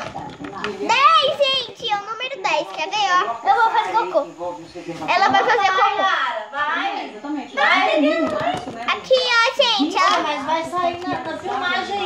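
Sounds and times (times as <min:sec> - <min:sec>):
girl's voice: 0:07.6 - 0:12.0.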